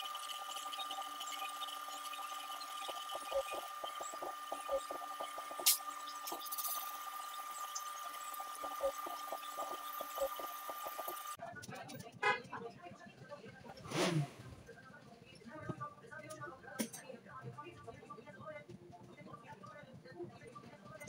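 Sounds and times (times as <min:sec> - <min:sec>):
workshop noise: 0:01.0 - 0:11.4, 0:13.7 - 0:14.7.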